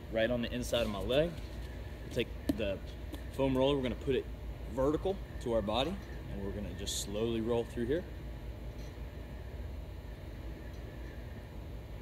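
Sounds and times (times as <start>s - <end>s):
ventilation system rumble: 0.0s - 12.0s.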